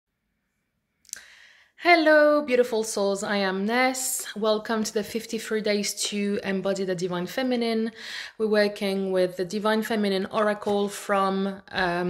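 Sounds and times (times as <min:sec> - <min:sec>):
woman drawing breath: 0:01.2 - 0:01.8, 0:08.0 - 0:08.4
woman speaking: 0:01.8 - 0:12.0.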